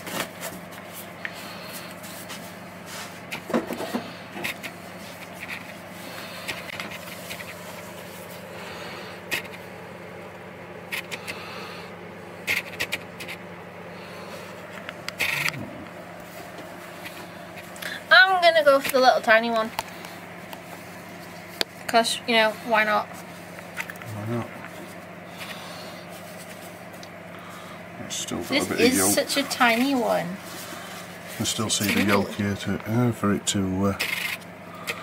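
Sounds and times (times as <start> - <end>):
steady low hum: 0.0 - 35.0.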